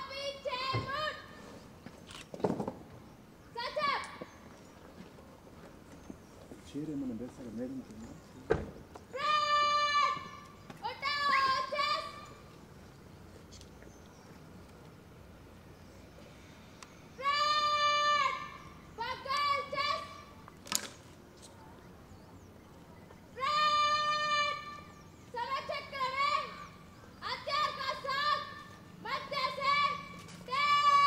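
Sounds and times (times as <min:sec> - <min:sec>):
sharp thump: 0:08.5 - 0:08.8.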